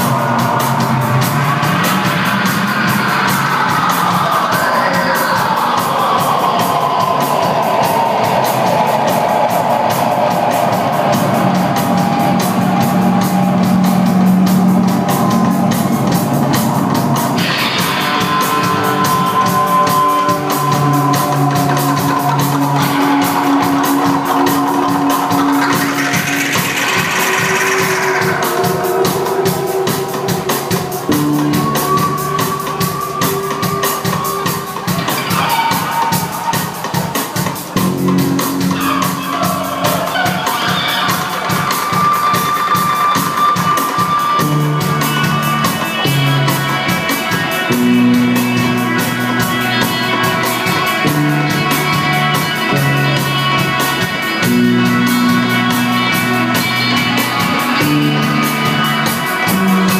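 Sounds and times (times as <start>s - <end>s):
drums ticking: 0.0s - 59.9s
low bass notes: 11.2s - 32.4s
swooping keyboard tone: 18.7s - 35.2s.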